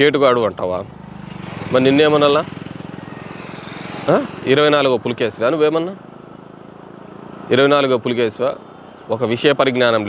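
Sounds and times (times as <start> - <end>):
motor vehicle engine drone: 0.0 - 10.0.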